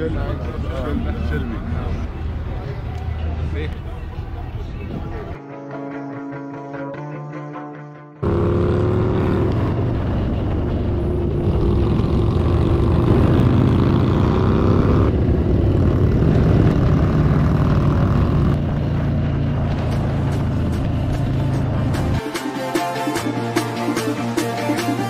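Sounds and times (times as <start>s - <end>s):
motorcycle engine cruising: 8.2s - 22.2s.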